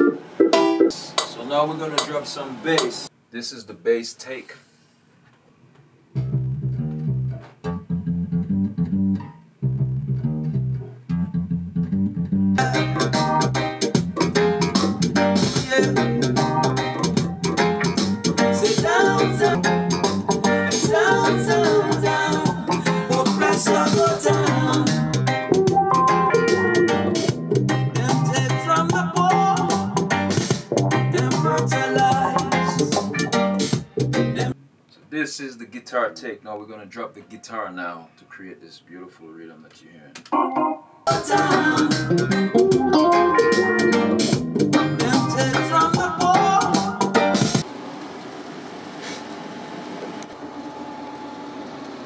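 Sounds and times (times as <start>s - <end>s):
reggae backing track: 0.0s - 3.1s, 6.2s - 34.6s, 39.7s - 47.6s
electric bass reggae line: 6.1s - 34.6s, 40.2s - 47.6s.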